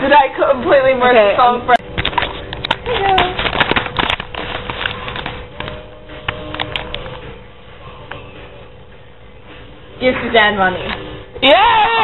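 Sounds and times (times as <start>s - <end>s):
crackling handling noises: 1.8s - 7.3s.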